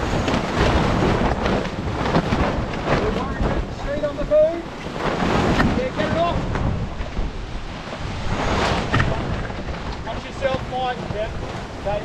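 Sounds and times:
water rushing past hull: 0.0s - 12.0s
wind buffeting microphone: 0.0s - 12.0s.

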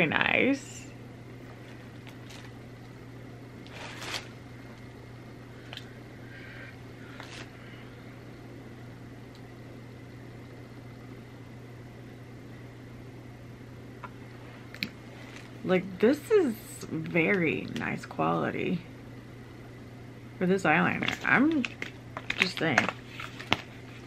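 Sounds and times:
low room hum: 0.0s - 24.0s
plastic pencil clicks and rustles: 21.0s - 23.7s.

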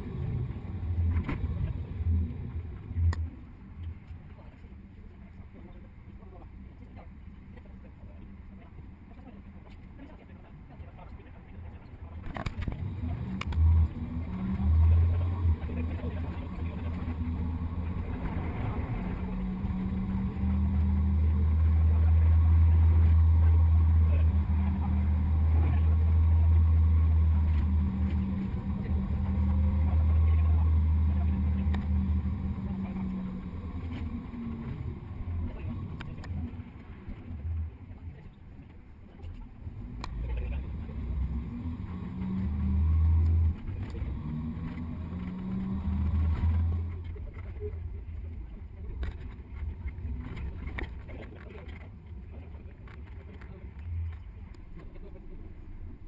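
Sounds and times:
bus engine rumble: 0.0s - 56.0s.

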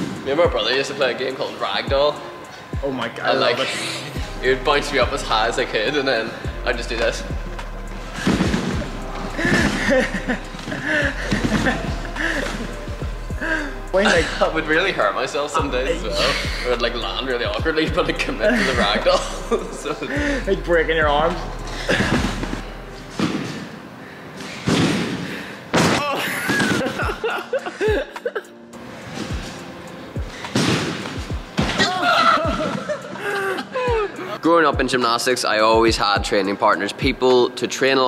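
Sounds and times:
background music: 0.0s - 38.0s.

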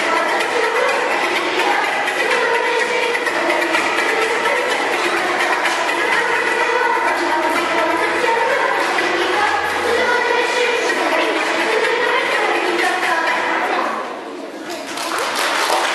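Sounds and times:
children's choir singing: 0.0s - 14.5s.

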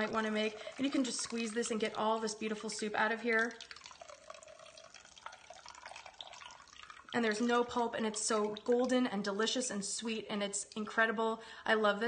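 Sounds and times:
liquid dripping into glass bowl: 0.0s - 9.1s.

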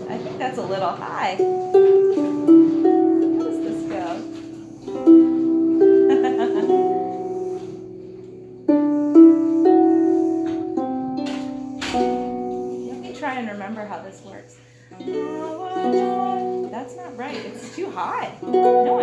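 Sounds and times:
harp playing slow hymn melody: 1.4s - 13.1s, 14.9s - 16.8s, 18.4s - 19.0s.

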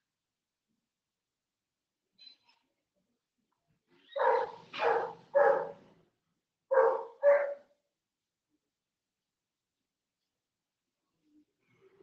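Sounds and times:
dog barking: 4.1s - 5.8s, 6.7s - 7.7s.

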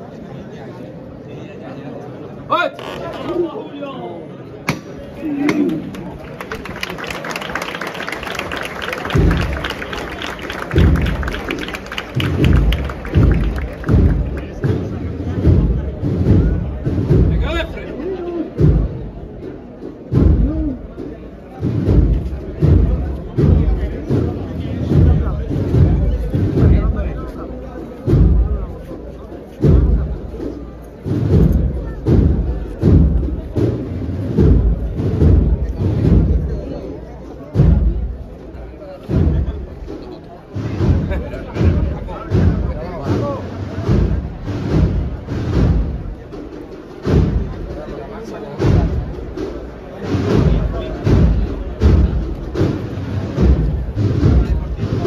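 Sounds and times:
crowd murmur: 0.0s - 55.0s
marching band playing: 5.9s - 27.2s, 29.6s - 36.6s, 39.1s - 55.0s
bass drum beating: 9.0s - 17.8s, 18.5s - 21.0s, 21.6s - 27.3s, 28.1s - 28.8s, 29.6s - 30.5s, 31.1s - 36.8s, 37.5s - 38.4s, 40.6s - 48.0s, 48.6s - 55.0s.

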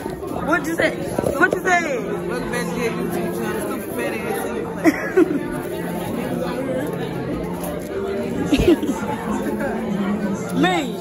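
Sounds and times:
crowd chatter in a hall: 0.0s - 11.0s.

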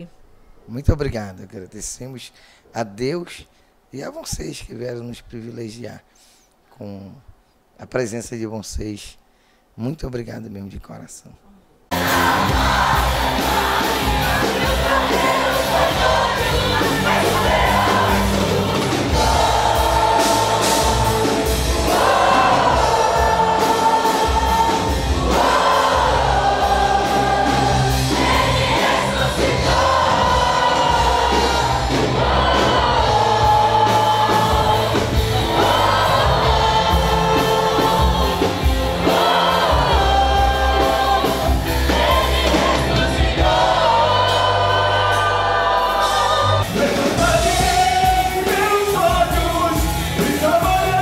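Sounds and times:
band accompaniment with bass: 11.9s - 51.0s
congregation singing: 11.9s - 51.0s.

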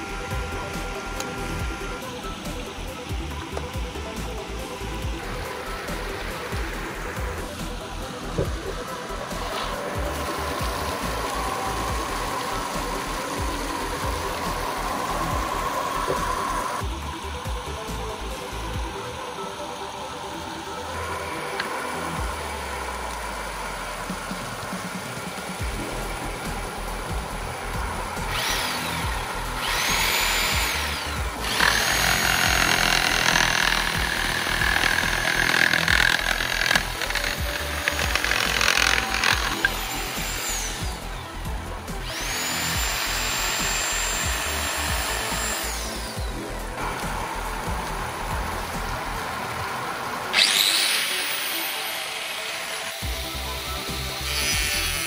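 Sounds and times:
background music with steady beat: 0.0s - 55.0s
electric jigsaw motor whining: 0.0s - 55.0s.

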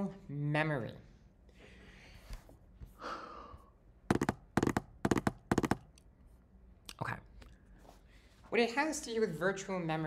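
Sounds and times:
laptop keys clacking: 4.1s - 6.0s.

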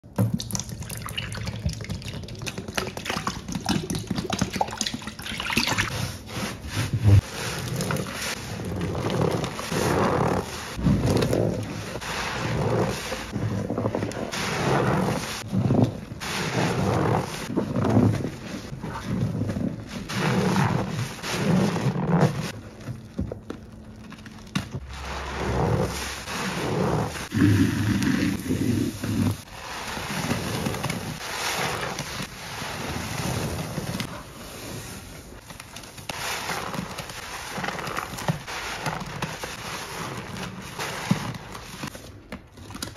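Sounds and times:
sponges squelching in suds: 0.1s - 42.9s.

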